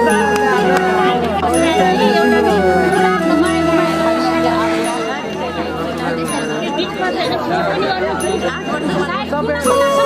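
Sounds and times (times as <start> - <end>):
people talking at once: 0.0 - 10.0.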